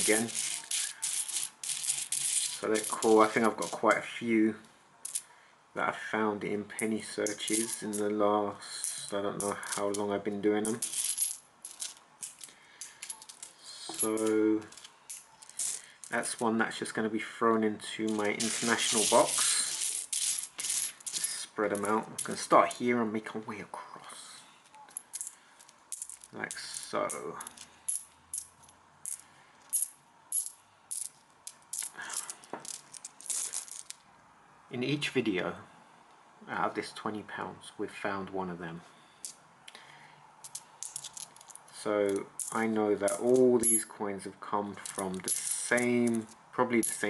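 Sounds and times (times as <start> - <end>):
coins clinking: 0.0 - 4.0, 5.0 - 5.2, 6.8 - 8.2, 8.8 - 16.4, 18.1 - 22.8, 24.6 - 34.0, 40.4 - 43.9, 44.8 - 47.0.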